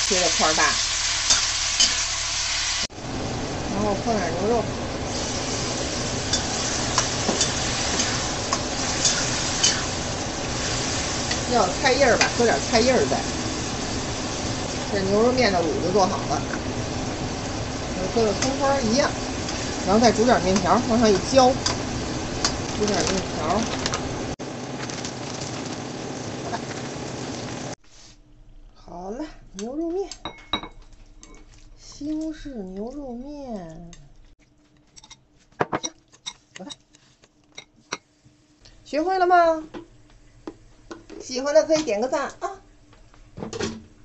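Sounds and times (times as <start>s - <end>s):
gas stove rushing: 0.0s - 27.8s
food sizzling in wok: 0.0s - 28.2s.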